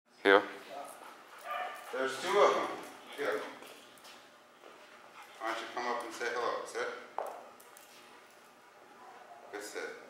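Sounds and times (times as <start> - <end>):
dog barking: 1.4 - 2.1.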